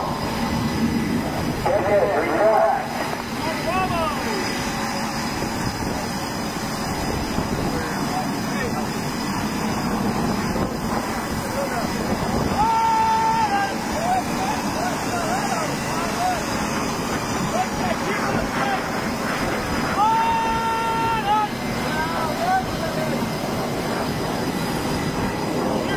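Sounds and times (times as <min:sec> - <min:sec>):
jet engines roaring: 0:00.0 - 0:25.9
wind: 0:00.0 - 0:25.9
person shouting: 0:12.5 - 0:16.4, 0:19.9 - 0:21.6.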